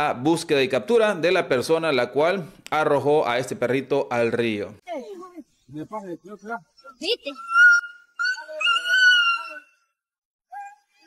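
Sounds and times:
dog whining: 7.3 - 9.8.

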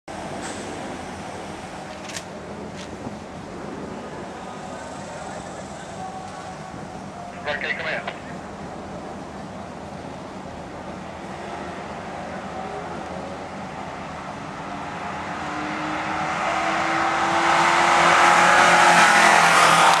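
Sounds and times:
race car engine passing: 13.7 - 20.0.

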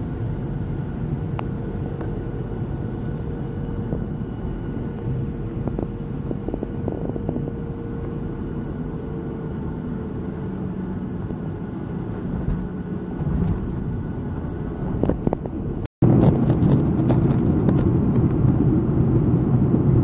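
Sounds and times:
jet engine rumble in cabin: 0.0 - 20.0
steady engine tone: 0.0 - 20.0.

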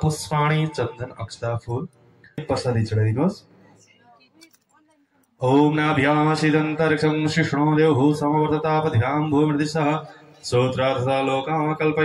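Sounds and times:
man chanting over loudspeaker: 5.4 - 12.0.

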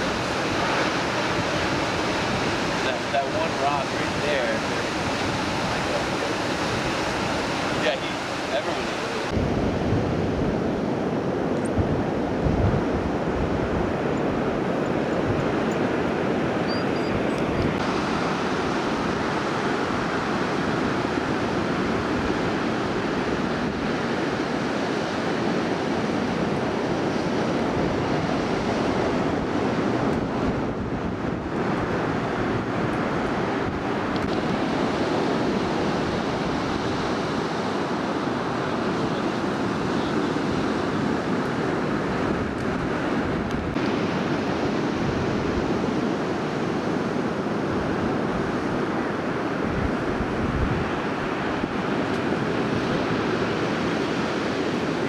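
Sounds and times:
ocean surf breaking: 0.0 - 55.0
wind buffeting microphone: 0.0 - 55.0.

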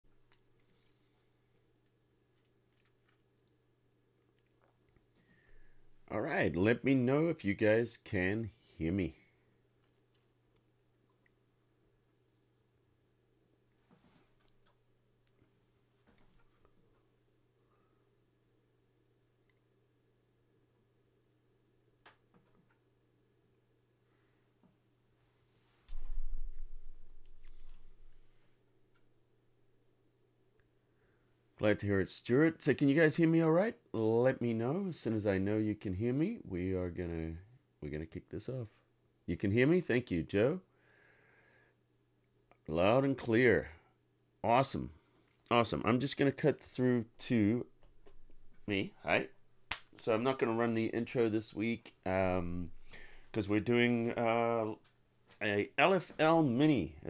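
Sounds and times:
low steady hum: 0.1 - 40.9, 41.8 - 57.0
low rumbling thump: 25.9 - 27.3.

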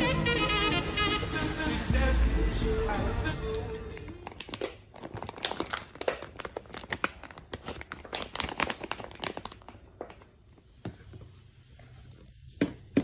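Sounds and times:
plastic packaging crinkling: 4.0 - 10.8.

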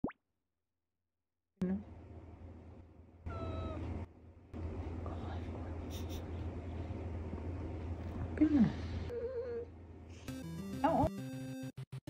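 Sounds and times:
voice: 1.6 - 1.8, 8.4 - 9.7, 10.8 - 11.1.

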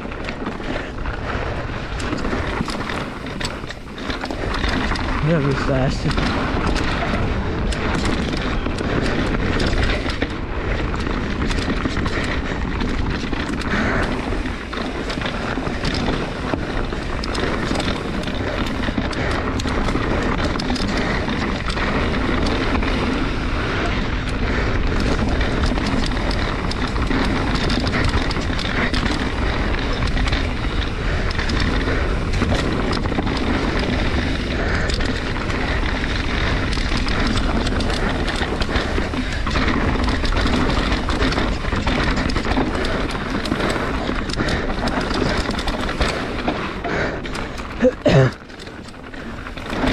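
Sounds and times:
bike knocking and rattling: 0.0 - 49.9
bike tyres on dirt: 0.0 - 49.9
wind buffeting microphone: 0.0 - 49.9.

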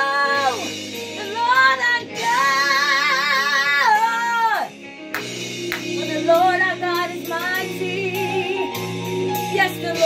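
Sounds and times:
high solo voice singing gospel: 0.0 - 4.7
instrumental backing: 0.0 - 10.0.

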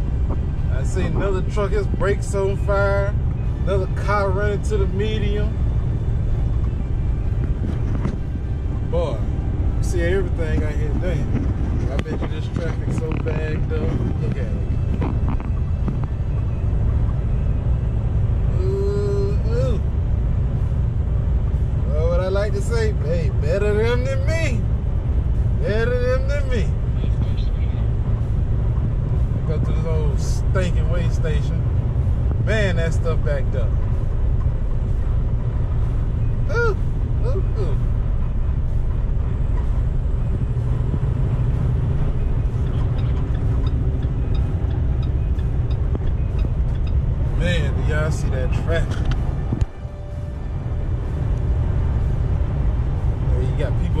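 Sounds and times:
truck cab rumble at highway speed: 0.0 - 54.0.

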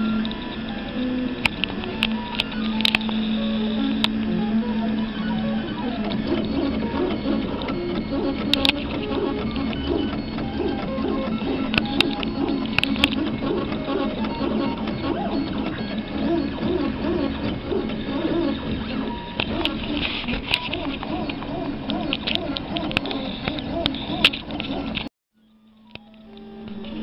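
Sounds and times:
stepper motors whining: 0.0 - 27.0
sharp clicks: 0.2 - 4.3, 5.7 - 25.1.

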